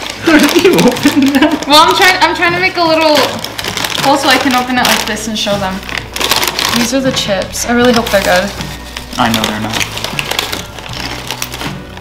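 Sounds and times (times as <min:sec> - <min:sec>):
crunching chips being chewed: 0:00.0 - 0:01.7, 0:03.2 - 0:05.0, 0:07.9 - 0:12.0
soft background music: 0:00.0 - 0:12.0.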